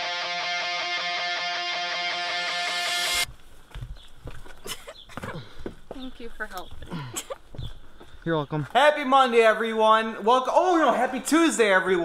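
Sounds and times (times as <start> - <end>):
intro music: 0.0 - 3.3.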